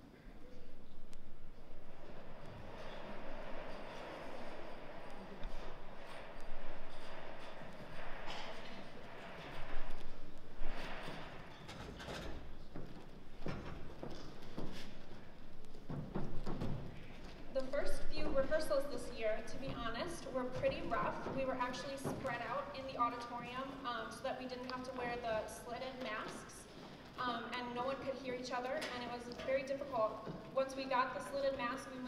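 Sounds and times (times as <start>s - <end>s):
chairs and music stands clattering: 2.0s - 32.0s.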